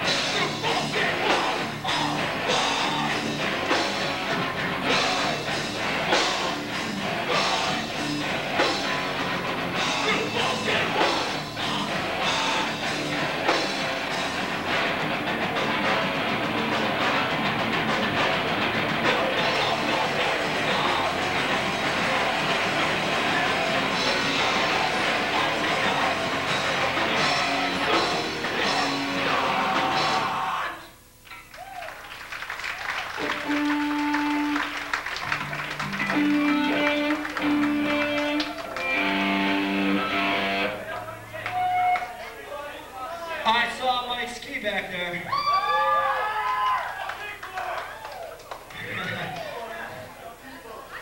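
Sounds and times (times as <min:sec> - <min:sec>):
punk band playing live: 0:00.0 - 0:30.6, 0:33.1 - 0:42.0
electric guitar held notes: 0:33.2 - 0:40.8.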